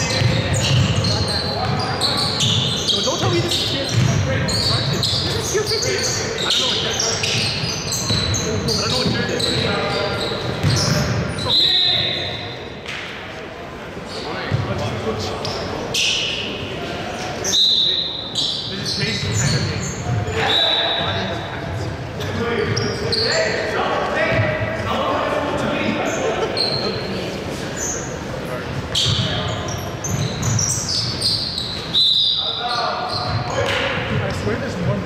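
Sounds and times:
sneakers squeaking: 0:00.0 - 0:13.1, 0:14.1 - 0:24.9, 0:25.9 - 0:35.0.

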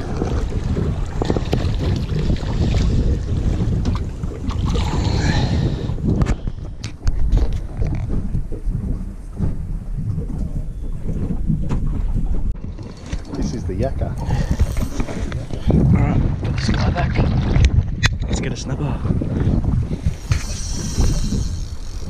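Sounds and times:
water washing against hull: 0:00.0 - 0:22.0
wind buffeting microphone: 0:00.0 - 0:22.0.

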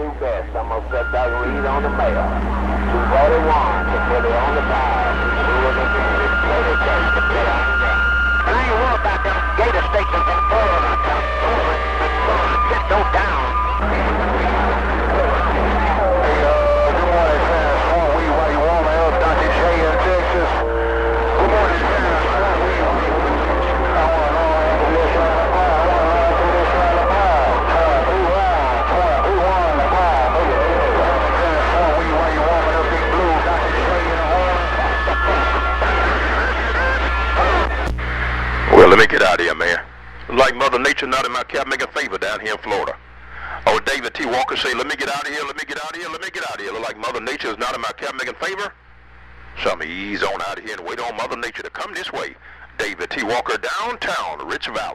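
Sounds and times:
constant low hum: 0:00.0 - 0:41.0, 0:42.4 - 0:43.8
garbled radio voices: 0:00.0 - 0:48.8, 0:49.4 - 0:54.9.

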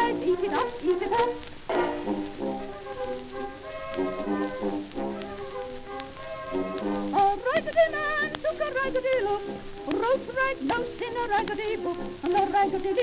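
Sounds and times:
old ragtime record with brass: 0:00.0 - 0:13.0.

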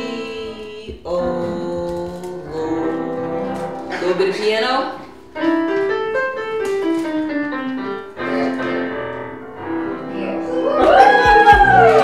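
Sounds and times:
digital piano solo: 0:00.0 - 0:12.0.

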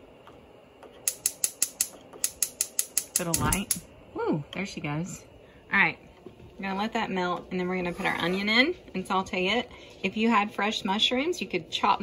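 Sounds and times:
gas stove igniter clicking: 0:01.0 - 0:03.9.

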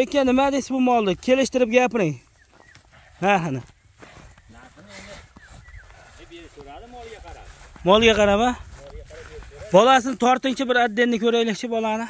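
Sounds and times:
low rumble: 0:07.1 - 0:09.8.

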